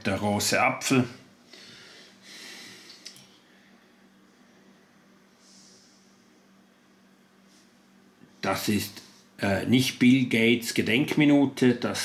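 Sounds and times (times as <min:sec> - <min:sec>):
faint low hum: 0:00.0 - 0:12.0
faint breath: 0:01.5 - 0:06.4.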